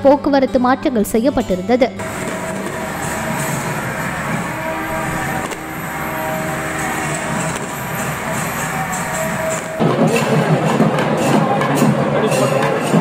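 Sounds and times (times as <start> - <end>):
drone humming overhead: 2.0 - 13.0.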